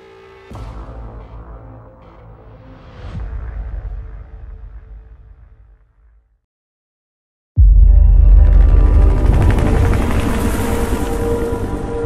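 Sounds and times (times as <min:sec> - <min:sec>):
helicopter rotor chopping: 0:08.6 - 0:11.9.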